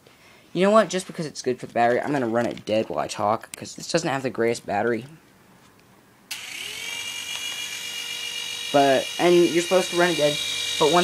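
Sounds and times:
toy helicopter rotor whine: 6.3 - 11.0.

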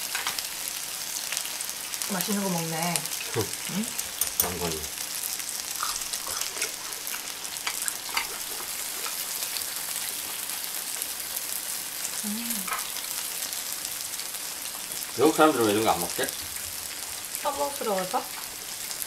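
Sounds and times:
fat crackling and popping: 0.0 - 19.0
meat sizzling on a griddle: 0.0 - 19.0.

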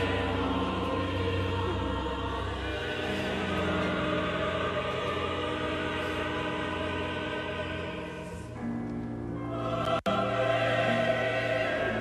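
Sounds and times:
orchestra and choir chords: 0.0 - 12.0.

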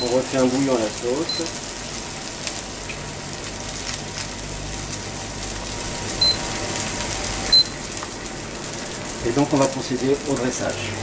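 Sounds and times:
fish sizzling in a frying pan: 0.0 - 11.0.

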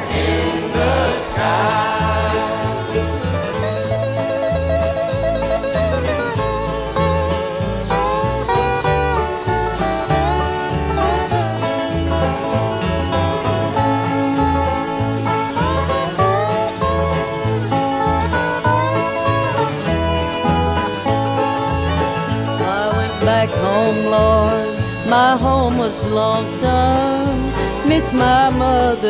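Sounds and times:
bluegrass string band playing: 0.0 - 29.0.

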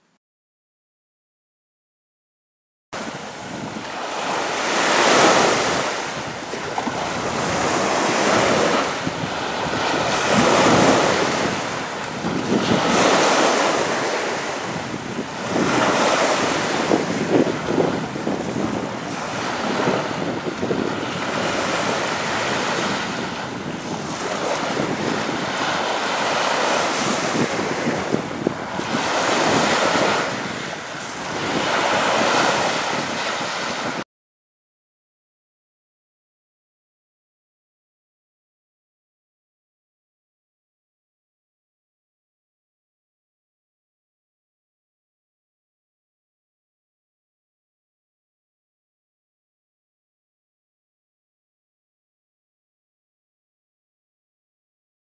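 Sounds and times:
sea waves washing onto beach: 3.0 - 34.0.

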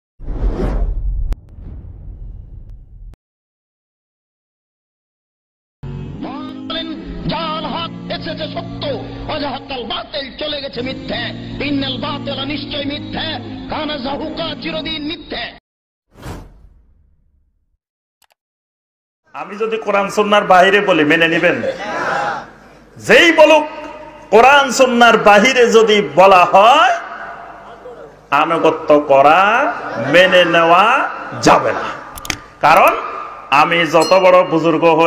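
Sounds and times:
cinematic whoosh: 0.2 - 3.2
deep rumble: 0.2 - 3.2.

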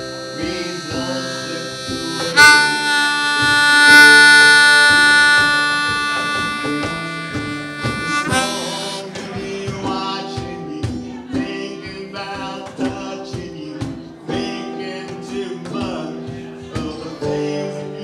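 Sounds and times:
harmonica held note: 0.0 - 9.4
strummed guitar: 0.0 - 18.0.

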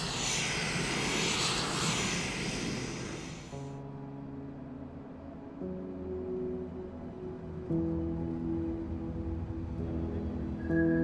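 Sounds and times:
low rumble: 0.0 - 3.6
air venting hiss: 0.0 - 3.7.

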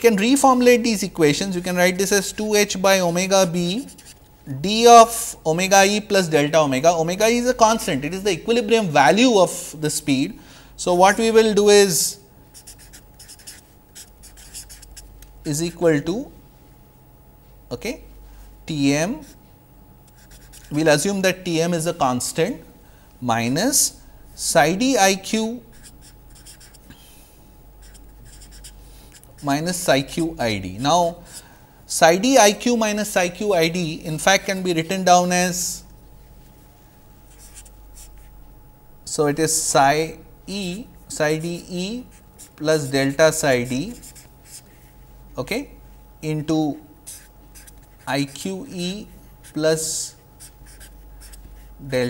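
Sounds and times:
steady low hum: 0.0 - 52.0
marker writing on paper: 3.7 - 4.2, 12.6 - 15.1, 20.1 - 20.8, 25.7 - 26.9, 27.8 - 30.3, 37.3 - 38.3, 43.9 - 44.8, 47.1 - 48.4, 49.4 - 49.6, 50.4 - 51.7.

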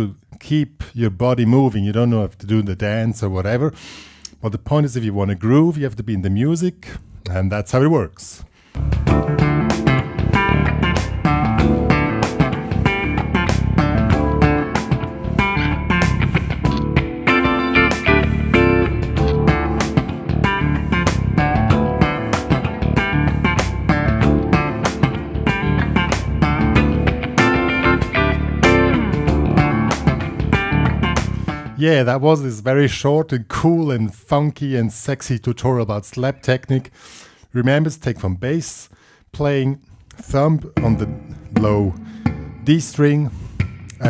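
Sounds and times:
backing track: 8.8 - 31.8, 40.1 - 44.0
slap funk electric guitar: 8.8 - 31.8.

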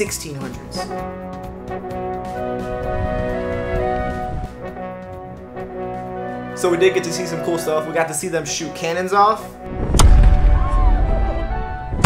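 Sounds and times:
background music: 0.0 - 12.0
cannon firing boom: 9.7 - 11.2.

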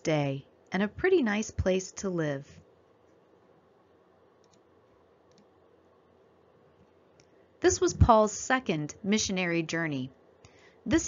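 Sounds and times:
faint clicks: 4.4 - 4.7.

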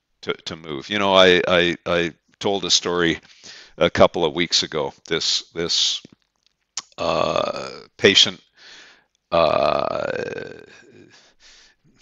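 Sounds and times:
man saying uh: 6.8 - 8.4, 9.3 - 11.1.

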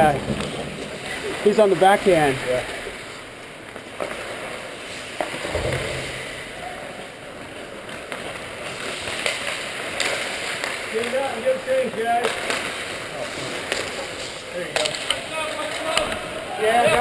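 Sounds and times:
stick and puck clacks: 7.8 - 11.5, 12.2 - 16.2.

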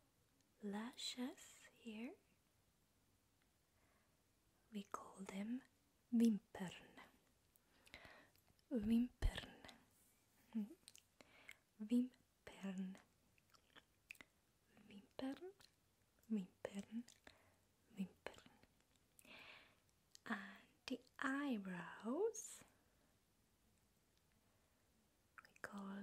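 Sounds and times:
woman speaking softly: 0.6 - 2.3, 4.7 - 7.2, 8.7 - 9.8, 10.5 - 10.9, 11.8 - 13.1, 14.7 - 17.2, 17.9 - 18.7, 20.2 - 22.8, 25.4 - 26.0
wet mouth sounds: 25.4 - 25.6.

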